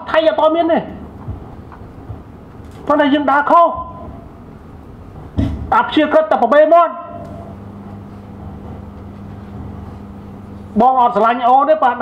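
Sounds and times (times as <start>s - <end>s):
person speaking into a microphone: 0.0s - 1.0s, 2.8s - 4.1s, 10.7s - 12.0s
low hum of hall: 0.0s - 12.0s.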